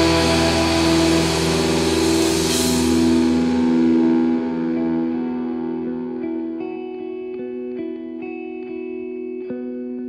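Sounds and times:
distorted guitar and bass chord ringing: 0.0 - 8.6.

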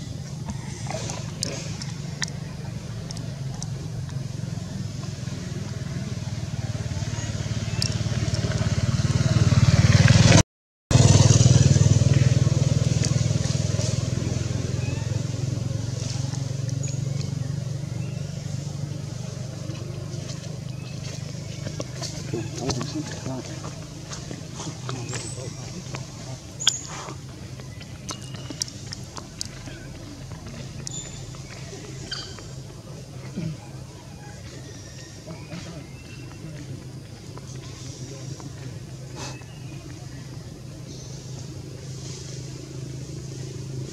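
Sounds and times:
motor vehicle passing: 0.0 - 43.9.

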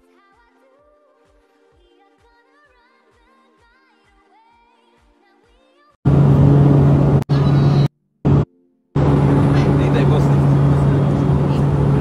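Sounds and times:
aircraft engine drone in cabin: 6.1 - 8.4, 9.0 - 12.0.

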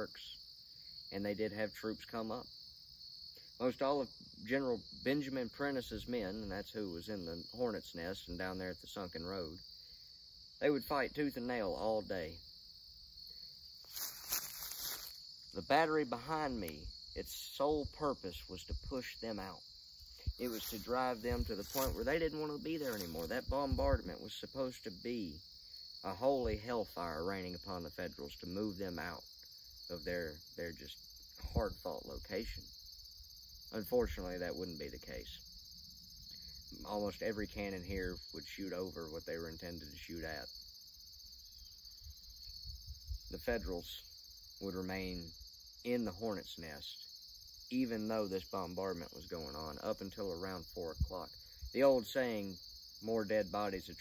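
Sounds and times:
insects chirring: 0.0 - 54.0
footsteps on dry grass and leaves: 13.8 - 15.7, 20.2 - 23.6.

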